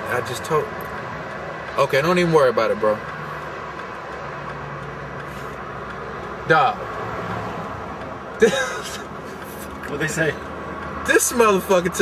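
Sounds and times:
freeway traffic rumble: 0:00.0 - 0:12.0.

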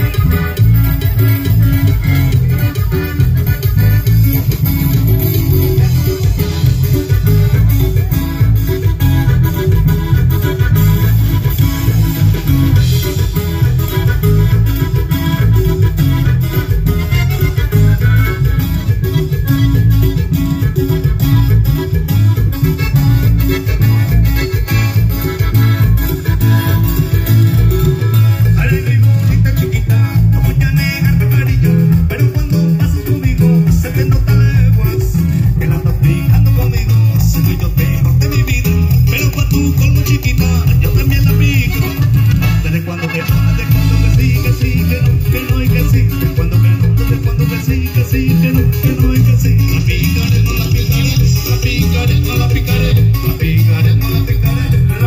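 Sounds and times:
live latin dance band: 0:00.0 - 0:55.0.

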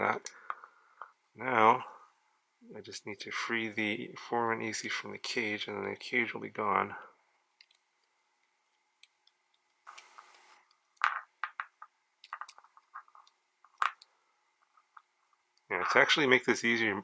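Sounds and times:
small plastic clicks and rubbing: 0:07.6 - 0:15.7.

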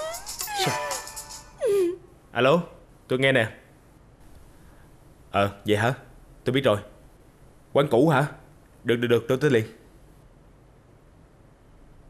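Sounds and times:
mobile phone musical ringtone: 0:00.0 - 0:01.6.

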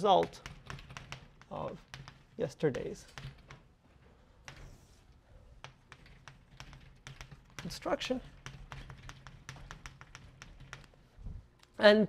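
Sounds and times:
chalk tapping on blackboard: 0:00.0 - 0:03.6, 0:04.4 - 0:04.8, 0:05.6 - 0:11.0.

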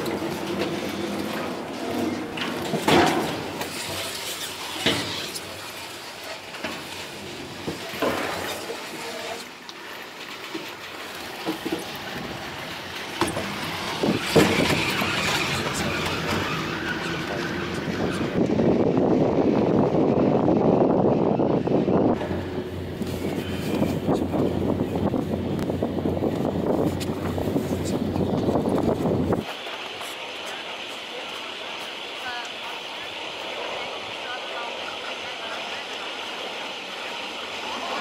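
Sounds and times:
moving haul rope rumble: 0:00.0 - 0:38.0.

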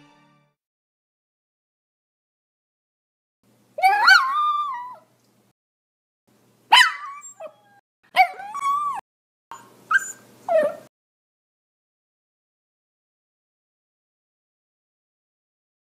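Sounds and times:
dog whimpering and yelping: 0:03.8 - 0:05.1, 0:06.7 - 0:10.9.

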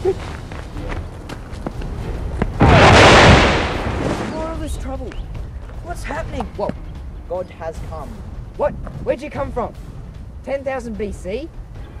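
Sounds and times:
running footsteps on asphalt: 0:00.0 - 0:02.6.

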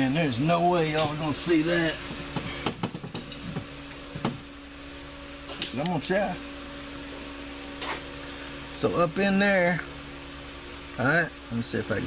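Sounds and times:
electric fan humming: 0:00.0 - 0:12.0.

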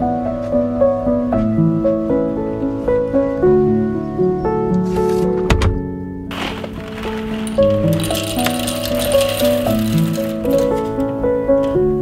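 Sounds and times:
coffee beans rattling into metal bowl: 0:06.3 - 0:11.2.

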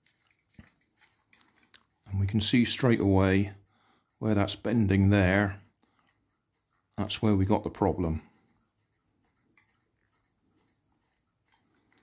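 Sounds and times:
faint clicks and rustles of cable: 0:00.0 - 0:02.3, 0:05.6 - 0:07.0, 0:09.4 - 0:12.0.

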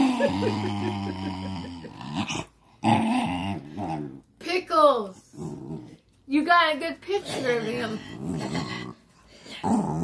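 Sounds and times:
small dog growling: 0:00.0 - 0:04.3, 0:05.3 - 0:06.1, 0:07.2 - 0:10.0.

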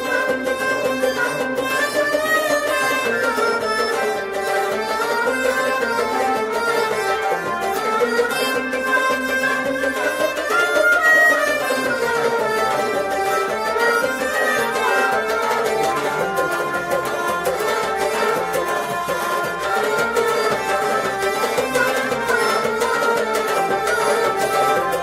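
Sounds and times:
bowed sarangi: 0:00.0 - 0:25.0
clay pot drum played by hand: 0:00.0 - 0:25.0
harmonium: 0:00.0 - 0:25.0
plucked rabab: 0:00.0 - 0:25.0.

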